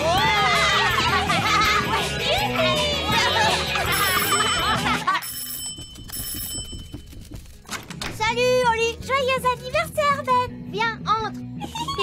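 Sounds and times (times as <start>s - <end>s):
cartoon children cheering: 0.0s - 4.4s
music: 0.0s - 12.0s
electric doorbell ringing: 3.9s - 7.1s.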